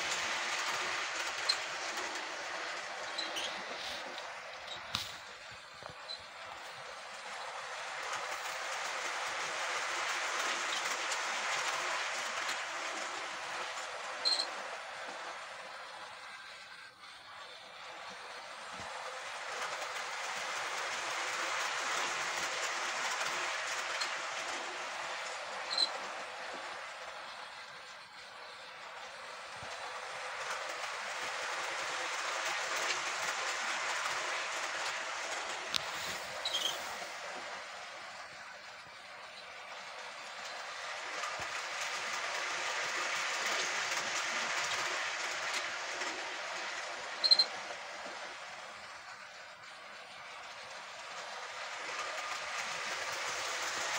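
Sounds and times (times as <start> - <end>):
model train rattling on track: 0.0 - 53.9.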